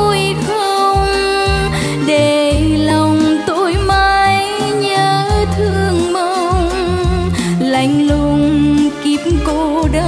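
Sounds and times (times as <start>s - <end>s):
instrumental accompaniment with bass: 0.0s - 10.0s
woman singing: 0.0s - 10.0s.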